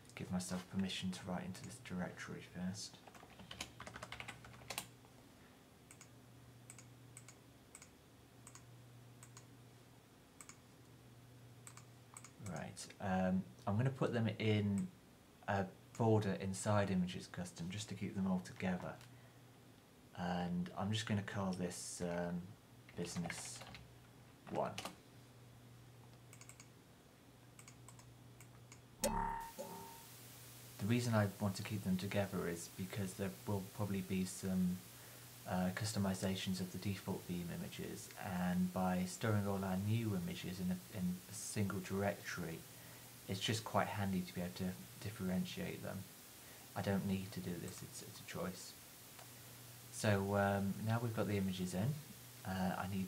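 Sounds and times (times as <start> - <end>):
computer keyboard keystrokes: 3.0 - 4.9, 23.1 - 23.8, 26.3 - 26.7
steady low hum: 3.8 - 53.0
computer mouse clicks: 5.9 - 6.1, 6.7 - 9.5, 10.4 - 10.6, 11.6 - 12.7, 26.3 - 26.7, 27.6 - 28.8.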